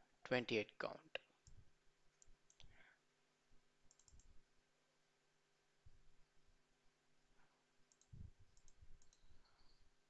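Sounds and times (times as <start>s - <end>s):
computer mouse clicks: 1.4s - 2.7s, 3.9s - 4.3s, 7.9s - 9.8s.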